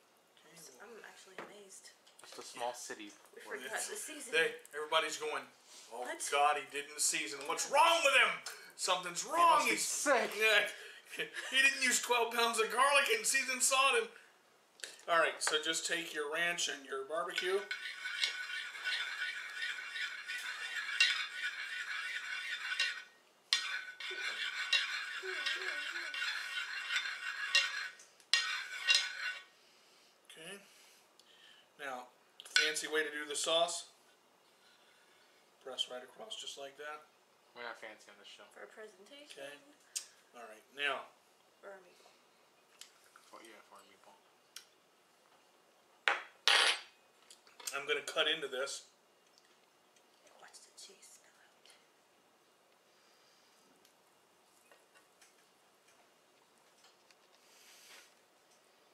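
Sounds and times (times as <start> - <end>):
metal spoon scraping ceramic plate: 17.2 - 29.5.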